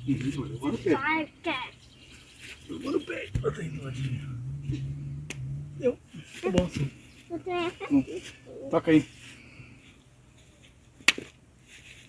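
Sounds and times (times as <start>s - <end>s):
low steady hum: 0.0s - 8.6s.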